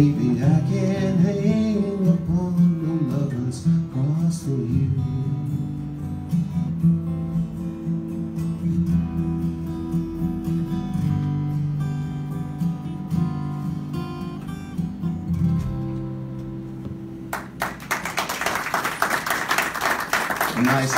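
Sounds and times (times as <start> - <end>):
acoustic guitar chords: 0.0 - 20.9
audience clapping: 17.3 - 20.9.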